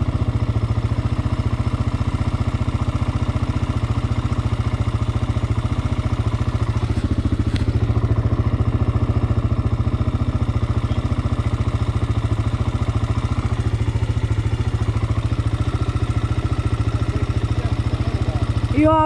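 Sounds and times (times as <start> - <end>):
quad engine idling: 0.0 - 19.0.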